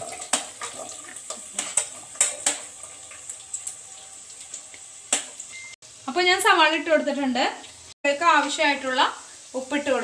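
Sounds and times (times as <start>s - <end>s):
onions sizzling in oil: 0.0s - 10.0s.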